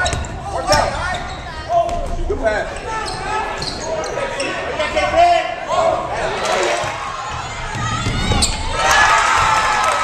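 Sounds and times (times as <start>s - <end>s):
people shouting: 5.6s - 10.0s.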